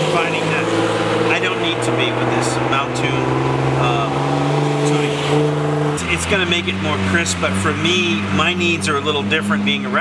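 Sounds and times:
man talking: 0.0 - 5.4, 6.0 - 10.0.

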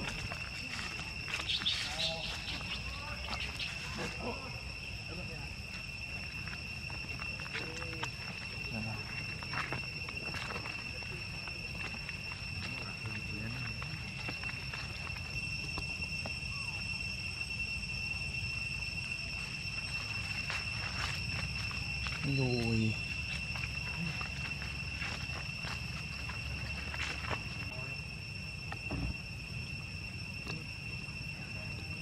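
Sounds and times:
high-pitched insect drone: 0.0 - 32.0.

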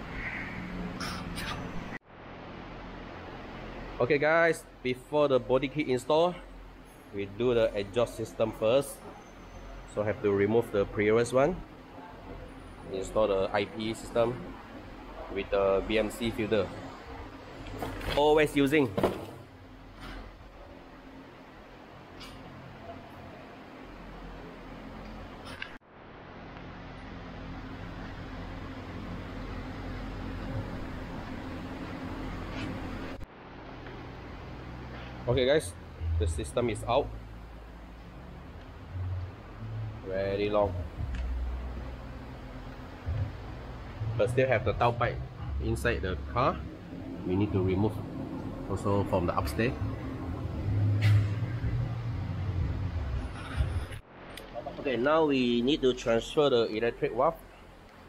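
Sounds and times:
electric fans running: 0.0 - 58.0
low mechanical rumble: 0.0 - 58.0
room hum and hiss: 0.0 - 58.0.

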